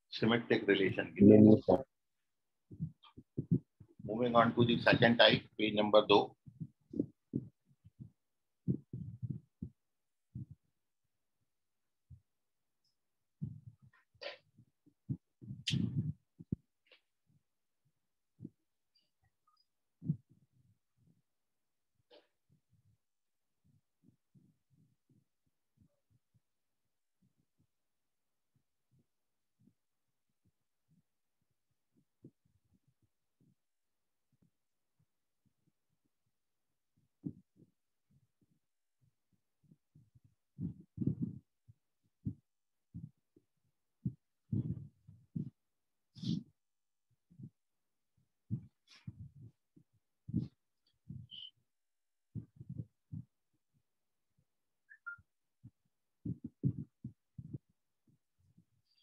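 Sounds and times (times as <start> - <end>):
soft low thumps and knocks: 2.7 - 5.2, 6.4 - 10.6, 13.4 - 14.4, 15.1 - 16.6, 40.6 - 41.4, 42.2 - 43.2, 44.0 - 45.6, 48.5 - 49.6, 50.3 - 51.4, 52.3 - 53.3, 56.2 - 57.7.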